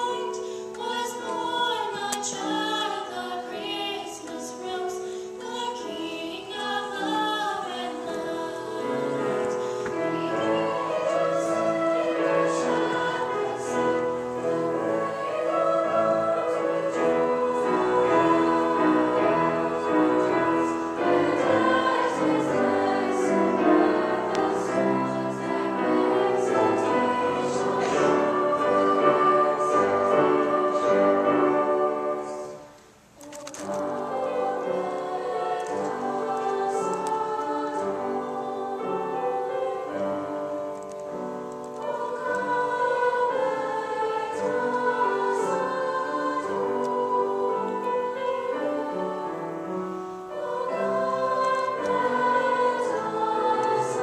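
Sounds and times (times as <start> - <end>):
children's choir singing chords: 0.0 - 40.9, 41.7 - 54.0.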